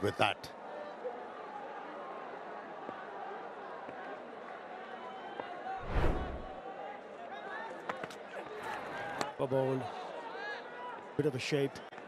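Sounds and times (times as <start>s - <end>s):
crowd voices: 5.6s - 11.1s.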